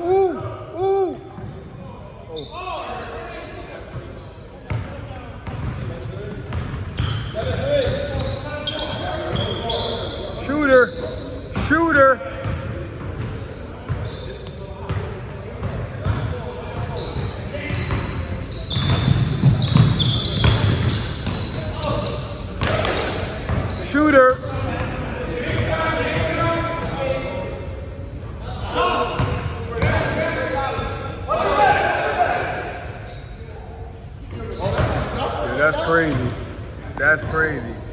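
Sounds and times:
players calling out: 0.0s - 12.8s, 28.4s - 33.5s.

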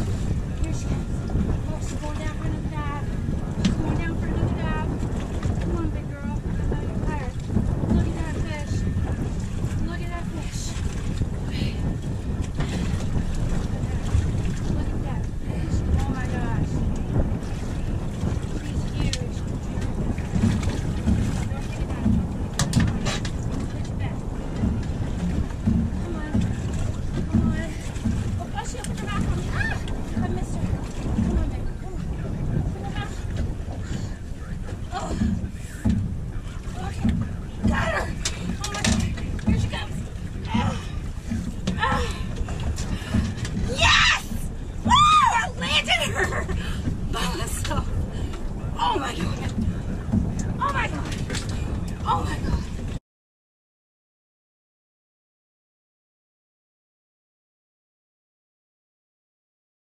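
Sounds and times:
water lapping against boat hull: 0.0s - 53.0s
wind buffeting microphone: 0.0s - 53.0s.

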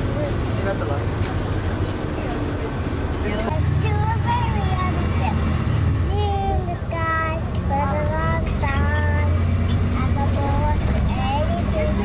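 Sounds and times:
vehicle cabin rumble: 0.0s - 12.0s.

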